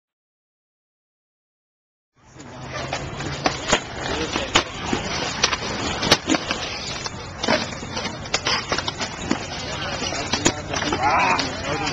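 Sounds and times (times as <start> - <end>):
scooter wheels rolling on concrete: 2.3 - 11.9
scooter deck clacking on ground: 2.4 - 11.9.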